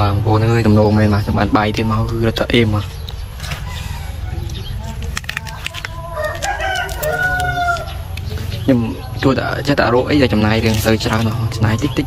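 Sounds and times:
rooster crowing: 3.4 - 4.6, 5.9 - 8.1
sharp clicks: 4.4 - 8.4.

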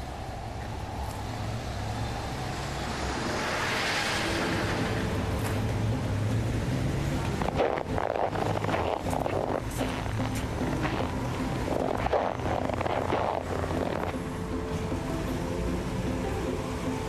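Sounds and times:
street traffic noise: 0.0 - 17.0
vehicle passing: 0.0 - 17.0.

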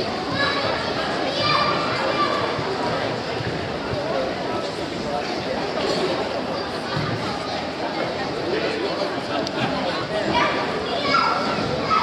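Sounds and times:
chatter of voices in hall: 0.0 - 12.0
child's high voice: 10.4 - 12.0.

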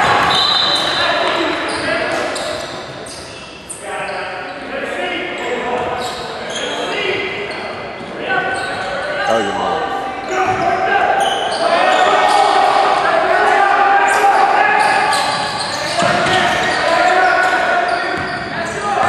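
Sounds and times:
indistinct voices echoing: 8.2 - 19.0.

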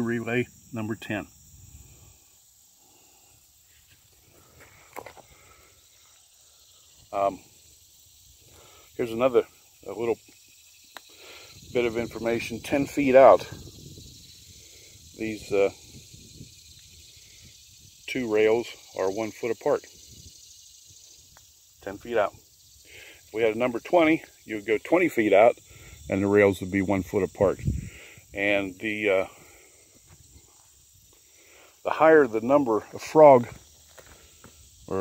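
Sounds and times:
high-pitched insect chorus: 0.0 - 35.0
high-pitched outdoor hiss: 0.0 - 35.0.

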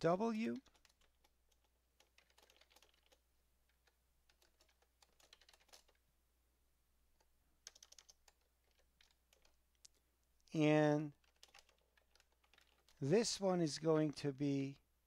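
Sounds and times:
faint typing on computer keyboard: 0.4 - 6.0, 7.2 - 13.4.

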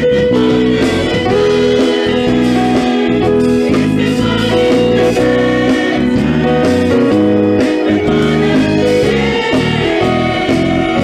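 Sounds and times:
instrumental accompaniment: 0.0 - 11.0
small choir singing: 0.0 - 11.0.

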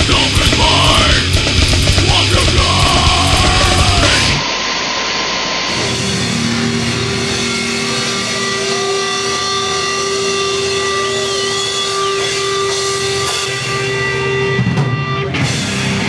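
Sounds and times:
amplifier hum: 0.0 - 16.0
guitar amplifier feedback: 0.0 - 16.0
live room noise: 0.0 - 16.0
loud grindcore music: 0.0 - 16.0.

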